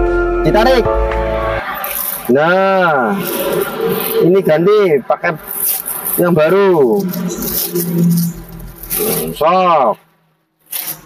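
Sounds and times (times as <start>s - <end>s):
plastic bag crinkling: 1.7s - 2.4s, 5.4s - 9.4s, 10.6s - 11.0s.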